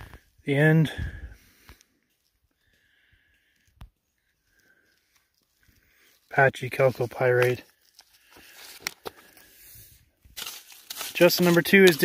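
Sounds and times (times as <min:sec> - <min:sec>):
rock hammer digging gravelly soil: 0:06.0 - 0:12.0.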